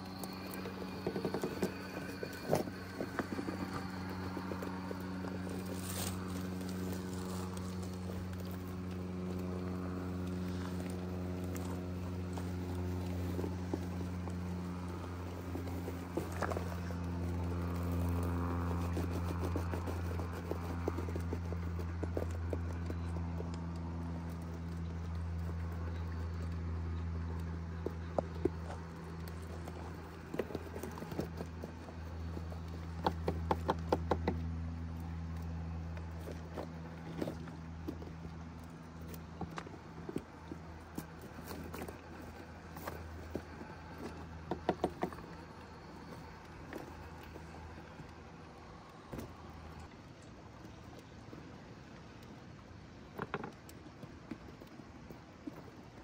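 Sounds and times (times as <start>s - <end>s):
toy car motor humming: 0.0s - 24.4s
tyres scraping on rock: 0.0s - 34.4s.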